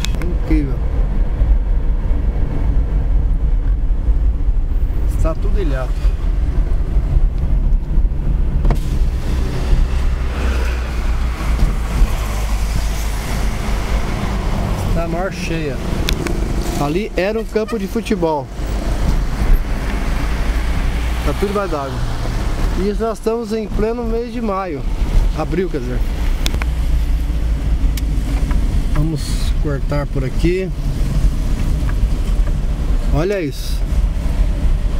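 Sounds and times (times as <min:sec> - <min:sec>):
car engine and tyres rumble: 0:00.0 - 0:34.9
wind and road noise: 0:00.0 - 0:34.9.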